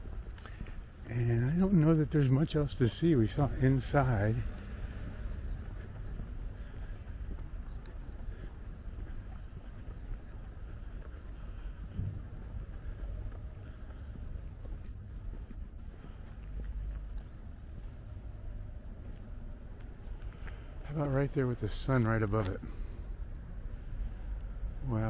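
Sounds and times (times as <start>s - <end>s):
low outdoor rumble: 0.0s - 25.0s
wind buffeting microphone: 4.4s - 20.1s.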